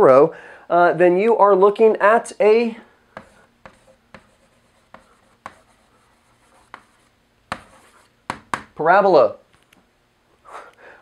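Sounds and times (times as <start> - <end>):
chalk scratching: 3.2 - 8.7
chalk tapping on a chalkboard: 3.2 - 8.8.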